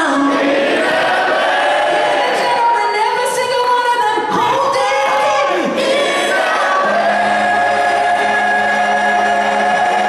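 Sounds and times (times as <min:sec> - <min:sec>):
voices singing held notes: 0:04.7 - 0:10.0.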